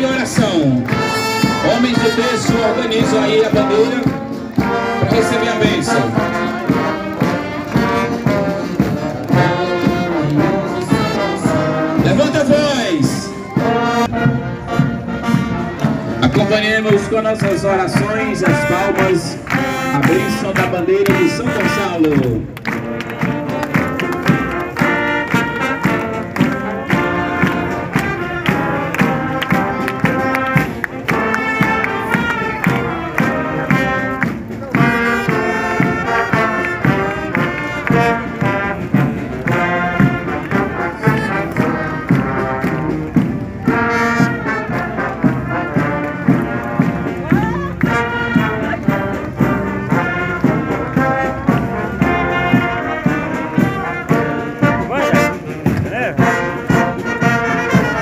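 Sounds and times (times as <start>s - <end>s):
brass band playing: 0.0s - 58.0s.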